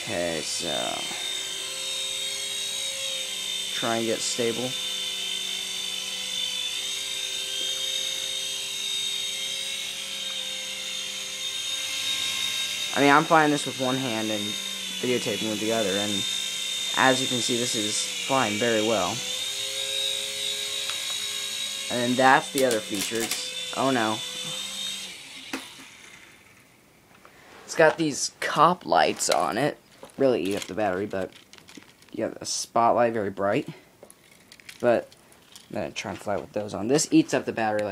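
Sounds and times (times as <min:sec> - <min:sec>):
toy helicopter motor whine: 0:00.0 - 0:26.8, 0:27.8 - 0:32.2, 0:34.2 - 0:35.8.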